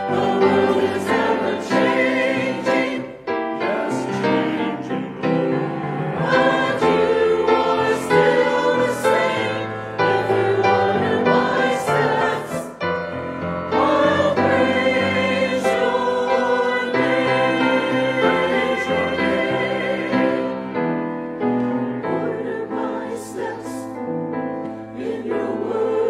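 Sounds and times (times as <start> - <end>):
mixed choir singing: 0.0 - 26.0.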